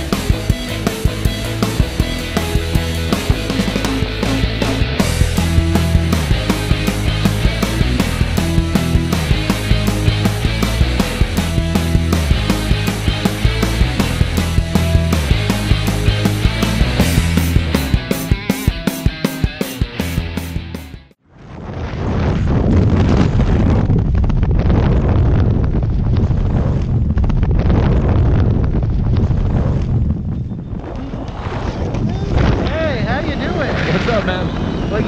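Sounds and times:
rock music: 0.0 - 21.2
wind rushing over microphone: 21.2 - 35.0.

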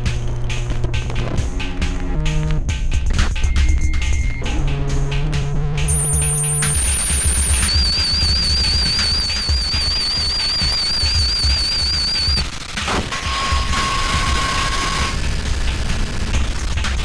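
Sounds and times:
high warbling tones: 5.9 - 12.4
steady mid-pitched tone: 5.9 - 12.4
electronic noise music: 5.9 - 12.6.

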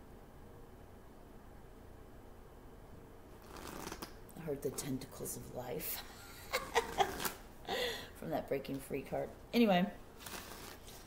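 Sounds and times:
cards rustling: 10.2 - 11.0.

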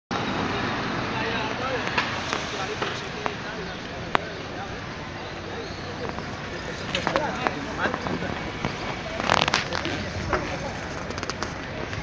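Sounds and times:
traffic hum: 0.1 - 12.0
indistinct voices: 0.2 - 12.0.

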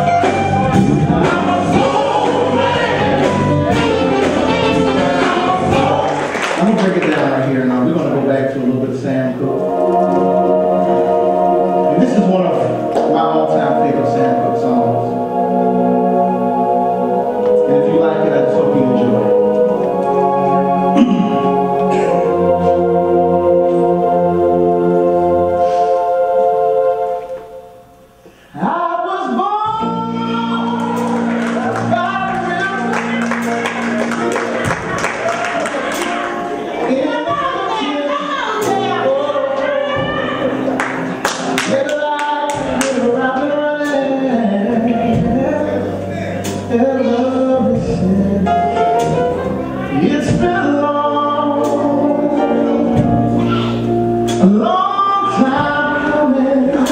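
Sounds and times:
singers singing together: 0.0 - 6.8, 34.3 - 56.9
live soul band: 0.0 - 56.9
man singing gospel-style run: 0.8 - 8.2, 28.6 - 33.6, 41.5 - 49.0, 54.4 - 56.9
sustained organ chord: 7.5 - 28.2.

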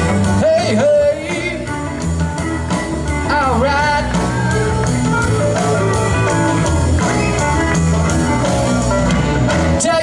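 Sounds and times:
lead guitar: 0.0 - 10.0
live blues band: 0.0 - 10.0
person singing: 0.3 - 1.9, 3.2 - 4.8.

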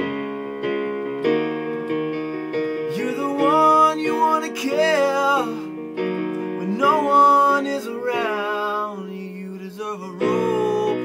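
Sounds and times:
electronic keyboard piano chords: 0.0 - 11.0.

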